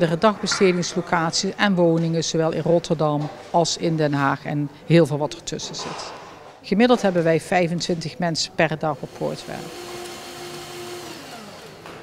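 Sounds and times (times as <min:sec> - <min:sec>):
small electric motor running: 0:09.1 - 0:11.8.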